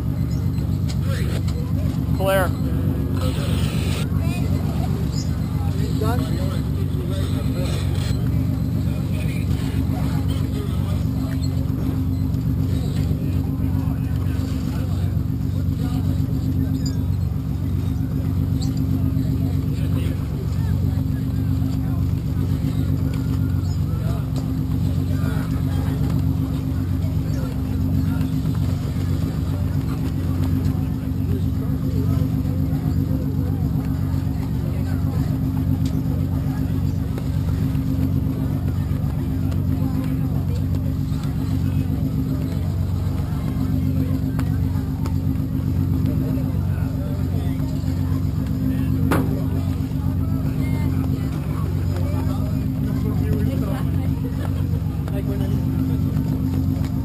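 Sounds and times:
engine running drone: 0.0 - 57.0.

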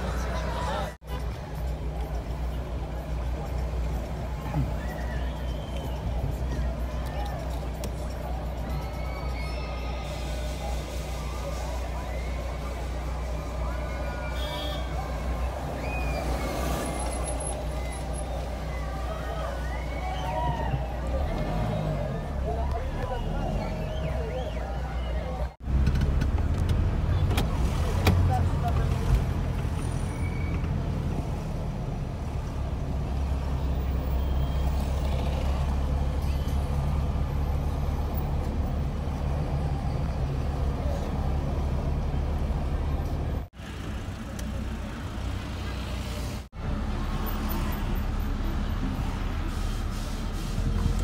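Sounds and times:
car engine and tyres rumbling: 0.0 - 51.0.

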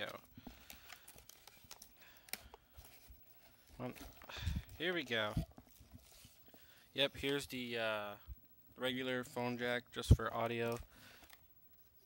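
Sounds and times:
packaging rustling and clicking: 0.0 - 6.6.

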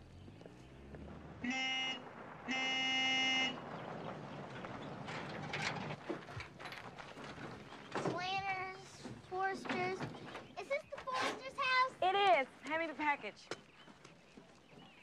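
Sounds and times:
car horn honking: 1.4 - 3.7.

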